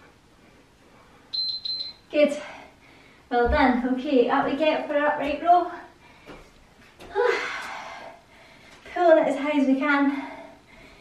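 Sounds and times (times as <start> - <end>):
interval timer beeps: 1.4 - 2.0.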